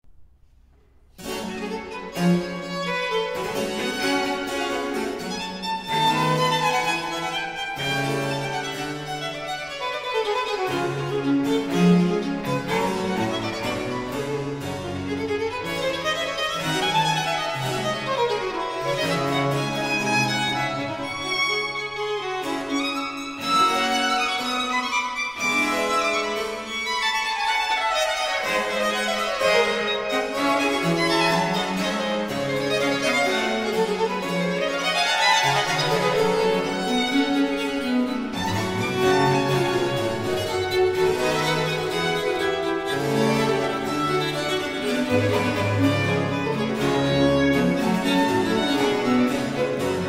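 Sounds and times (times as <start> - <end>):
baroque chamber ensemble playing: 1.1 - 50.0
violins: 1.1 - 50.0.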